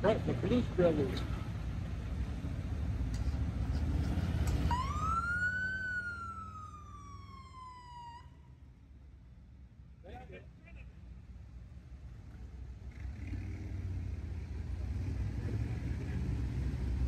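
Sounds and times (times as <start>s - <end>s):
low engine rumble: 0.0s - 17.0s
police siren wail: 4.4s - 8.6s.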